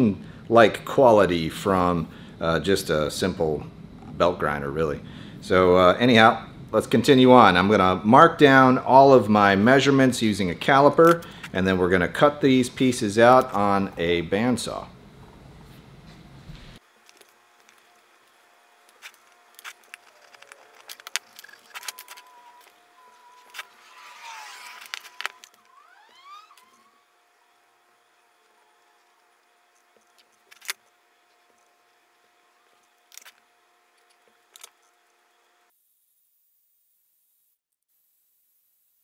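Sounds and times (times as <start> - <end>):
faint wavering whistle-like tone: 21.5 - 24.8, 25.6 - 27.1.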